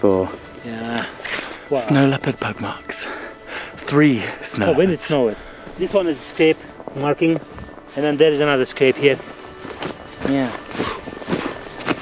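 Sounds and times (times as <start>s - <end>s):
boots stepping on snow: 4.4s - 12.0s.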